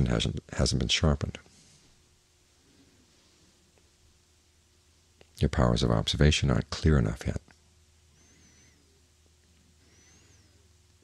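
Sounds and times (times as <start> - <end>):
steady low hum: 0.0 - 11.0
faint high whistling note: 8.2 - 9.0, 9.8 - 10.7.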